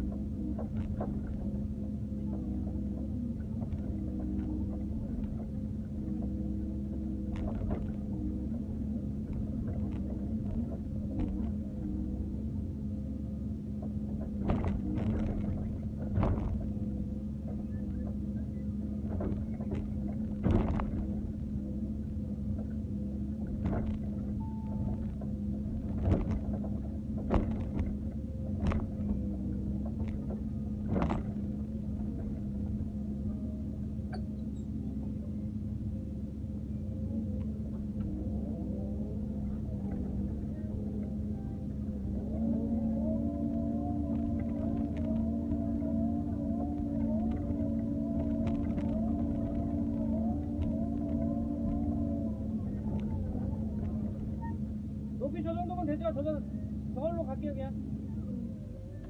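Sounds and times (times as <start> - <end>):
diesel engine running: 0.0 - 59.0
wavering hydraulic whine: 0.0 - 59.0.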